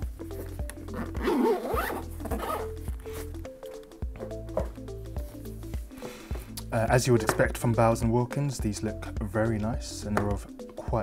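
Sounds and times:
background music: 0:00.0 - 0:11.0
zipper being zipped: 0:00.3 - 0:03.4.

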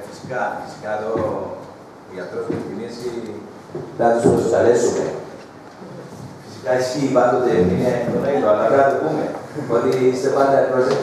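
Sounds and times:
person talking with room echo: 0:00.0 - 0:11.0.

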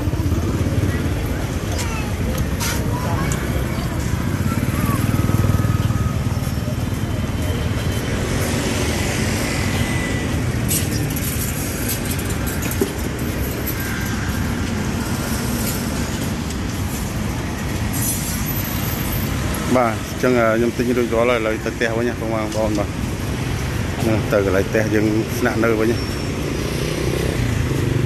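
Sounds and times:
motorbike passing close: 0:00.0 - 0:21.7, 0:22.8 - 0:28.0
cars and motorbikes running past: 0:00.0 - 0:28.0
traffic rumble: 0:00.0 - 0:28.0.

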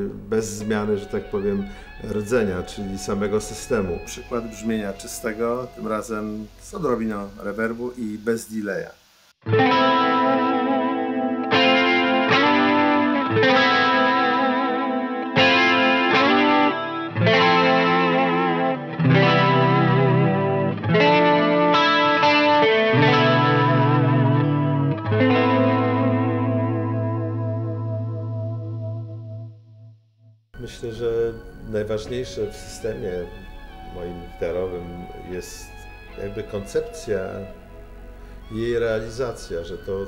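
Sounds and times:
clean electric guitar chords: 0:00.0 - 0:07.5, 0:09.4 - 0:29.9, 0:30.6 - 0:40.0.

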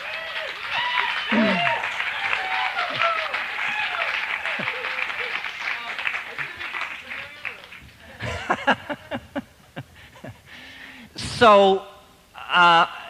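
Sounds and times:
people calling out: 0:00.0 - 0:05.4
audience applauding: 0:00.0 - 0:08.9
people laughing: 0:01.3 - 0:07.4, 0:08.0 - 0:10.6.

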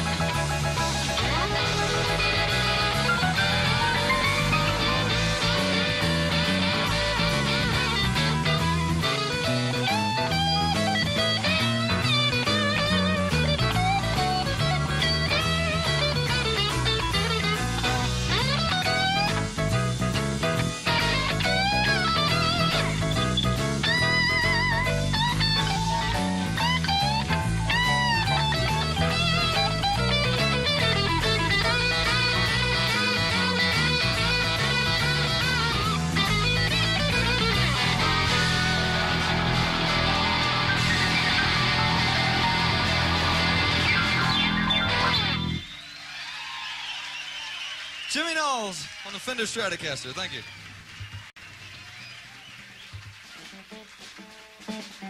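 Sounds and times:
electric guitar solo with bent notes: 0:00.0 - 0:45.7
live rock band: 0:00.0 - 0:46.0, 0:51.0 - 0:55.0.

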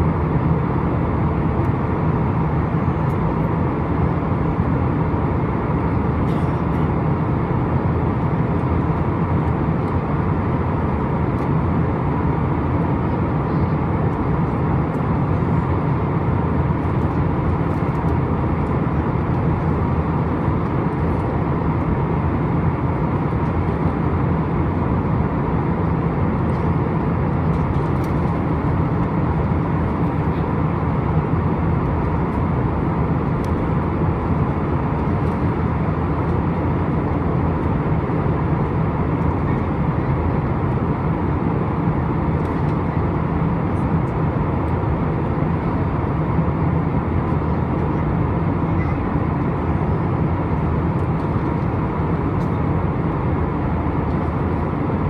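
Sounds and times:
faint steady whine: 0:00.0 - 0:55.0
jet engines humming: 0:00.0 - 0:55.0.

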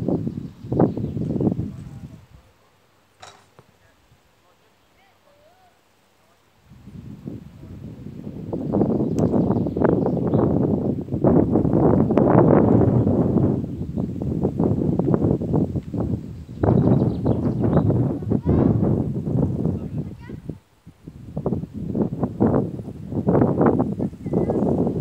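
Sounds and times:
wind buffeting microphone: 0:00.0 - 0:02.7, 0:06.6 - 0:25.0.

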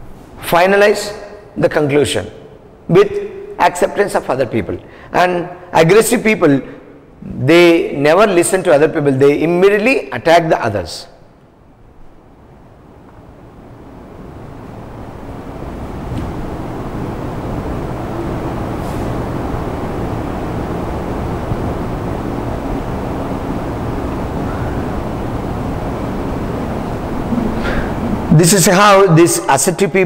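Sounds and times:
faint hum: 0:00.0 - 0:30.0
low rumbling background noise: 0:00.0 - 0:30.0.

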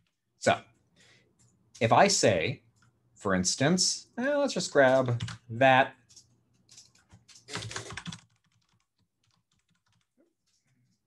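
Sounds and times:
typing on computer keyboard: 0:04.8 - 0:10.2.

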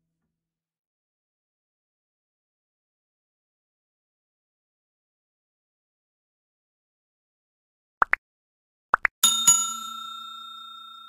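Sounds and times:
notification bell ringing: 0:09.2 - 0:11.0.

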